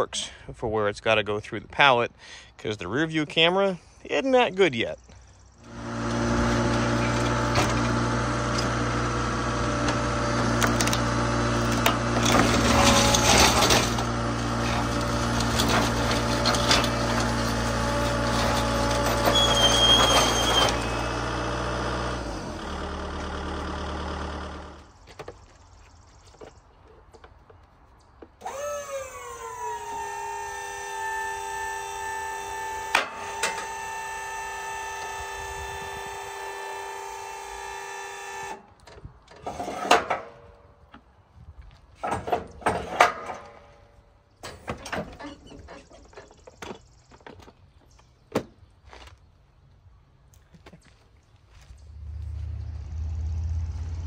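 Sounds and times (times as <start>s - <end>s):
electric motor whine: 5.6s - 24.9s, 28.4s - 38.7s
diesel engine running: 5.6s - 25.0s, 51.5s - 54.0s
clanks and rattles: 9.8s - 21.4s, 41.9s - 48.6s.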